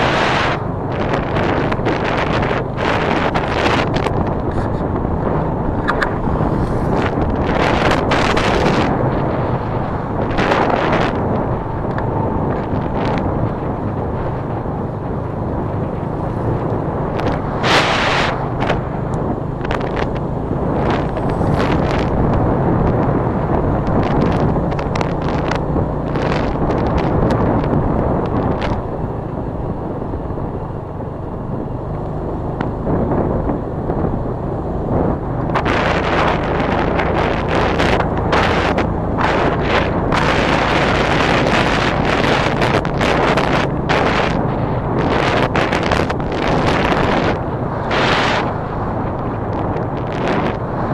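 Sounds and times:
motorcycle engine running: 0:00.0 - 0:50.9
wind buffeting microphone: 0:00.0 - 0:50.9.

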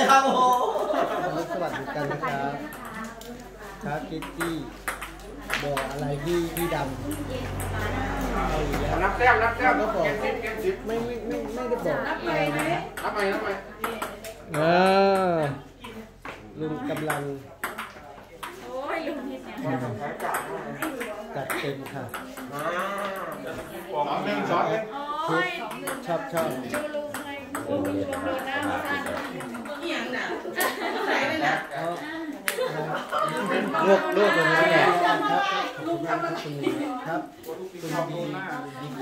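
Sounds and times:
table tennis ball clicking: 0:04.2 - 0:07.7, 0:25.6 - 0:29.8
people talking: 0:25.4 - 0:37.0.

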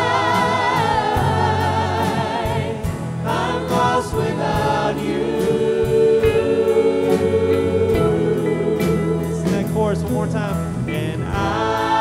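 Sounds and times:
live band: 0:00.0 - 0:12.0
singers singing together: 0:00.0 - 0:12.0
steady drum beat: 0:00.0 - 0:12.0.

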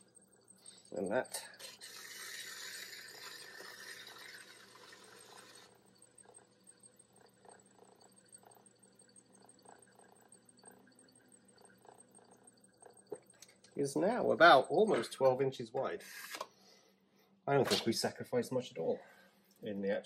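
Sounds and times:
potter's wheel humming: 0:00.0 - 0:16.4.

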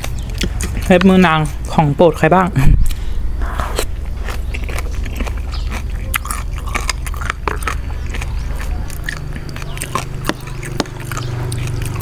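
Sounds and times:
crunchy chewing: 0:00.0 - 0:12.0
low steady hum: 0:00.0 - 0:12.0.

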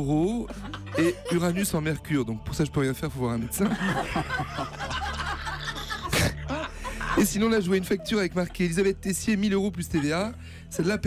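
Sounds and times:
men laughing: 0:00.0 - 0:02.0, 0:03.5 - 0:11.0.

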